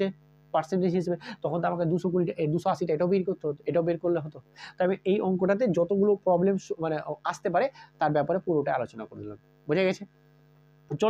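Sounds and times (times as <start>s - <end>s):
man speaking: 0.0s - 10.1s
faint mains hum: 0.0s - 11.0s.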